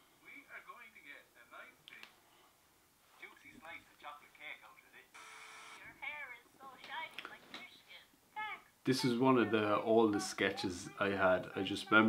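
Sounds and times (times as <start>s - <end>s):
man speaking: 8.8s - 12.0s.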